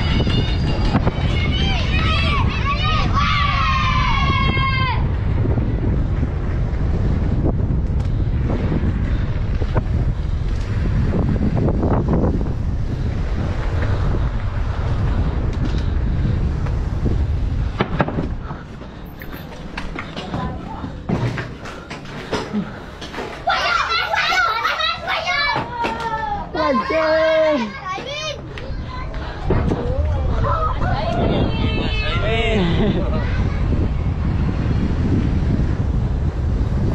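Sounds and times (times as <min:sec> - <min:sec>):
wind buffeting microphone: 0:00.0 - 0:36.9.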